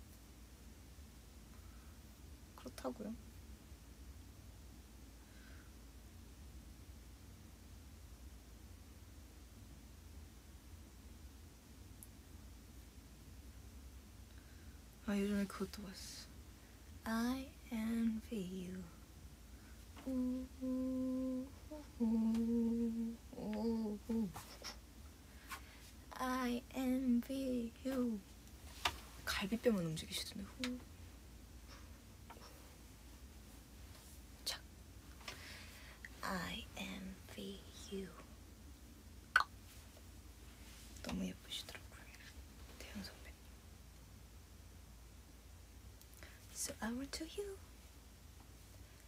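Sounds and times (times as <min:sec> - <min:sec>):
woman whispering: 0:02.6 - 0:03.2, 0:15.0 - 0:16.3, 0:17.0 - 0:19.0, 0:20.0 - 0:24.8, 0:26.1 - 0:28.2, 0:29.2 - 0:30.8, 0:34.4 - 0:34.6, 0:36.0 - 0:38.3, 0:41.0 - 0:43.4, 0:46.5 - 0:47.6
woman humming a slow tune: 0:20.0 - 0:24.8.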